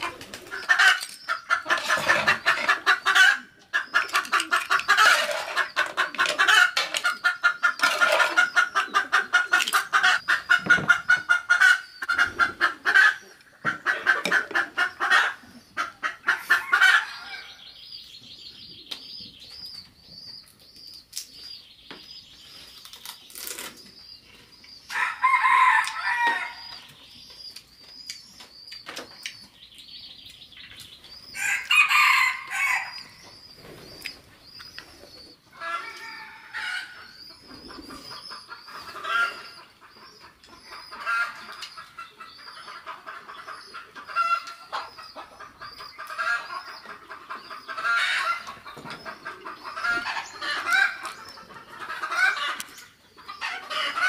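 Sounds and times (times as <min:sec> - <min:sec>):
chickens clucking: 0:00.0 - 0:54.0
rooster crowing: 0:25.0 - 0:26.6, 0:31.4 - 0:33.0.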